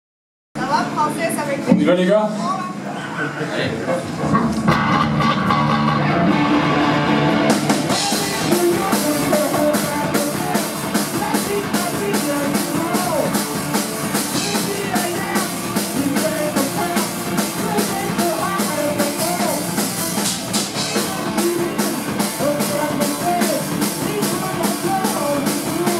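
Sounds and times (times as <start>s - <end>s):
electric guitar: 3.7s - 25.9s
bass guitar: 3.8s - 25.9s
drum kit beat with cymbals: 4.1s - 25.9s.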